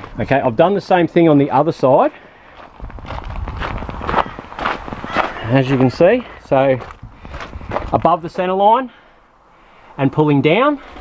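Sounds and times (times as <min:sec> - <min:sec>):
footsteps on gravel: 0:02.0 - 0:08.6.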